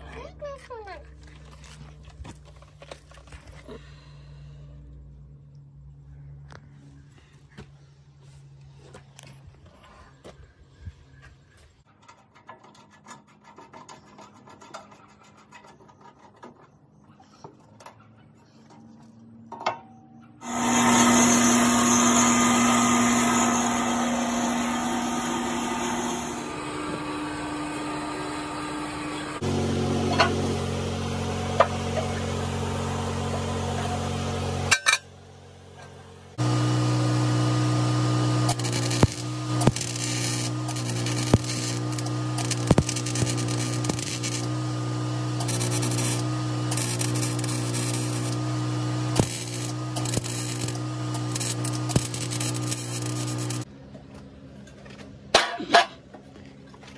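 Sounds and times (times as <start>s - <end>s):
band saw cutting steel: 20.4s - 35.0s, 36.4s - 53.7s
arc welding crackling: 36.4s - 53.7s
steady hum: 36.4s - 53.7s.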